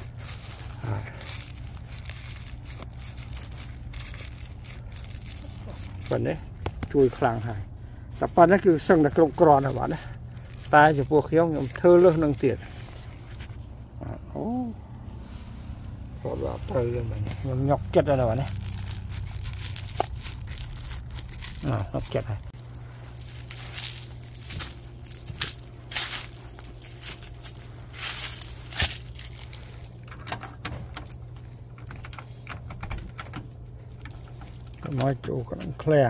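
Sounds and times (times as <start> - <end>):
keys jingling: 0.0 - 7.1, 18.0 - 35.2
low steady hum: 0.0 - 36.0.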